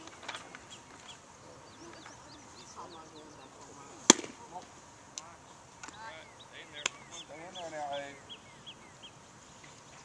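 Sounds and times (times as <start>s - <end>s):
faint voices: 0.0s - 8.8s
baseball smacking into leather mitt: 4.1s - 4.4s.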